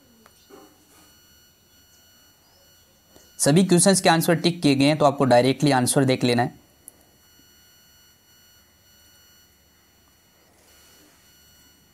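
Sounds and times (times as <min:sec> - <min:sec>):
high-pitched electronic whine: 0:00.0 - 0:11.9.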